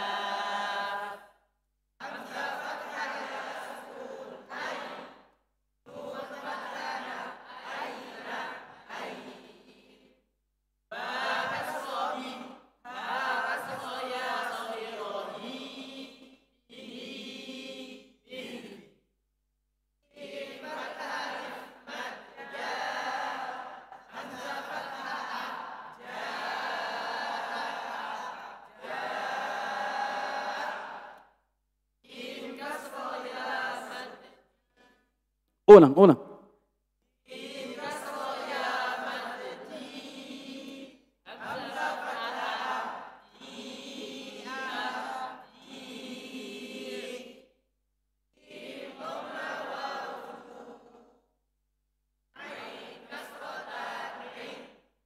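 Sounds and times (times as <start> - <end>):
group of voices chanting in unison: 0.0 - 1.4, 2.0 - 10.2, 10.9 - 19.0, 20.1 - 31.4, 32.0 - 35.0, 35.7 - 36.3, 37.2 - 47.6, 48.4 - 51.3, 52.4 - 54.9
voices reading aloud in unison: 35.7 - 36.2.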